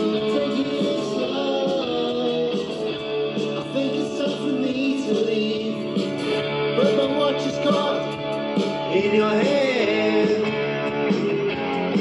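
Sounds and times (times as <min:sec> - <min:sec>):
song with singing and guitar: 0:00.0 - 0:12.0.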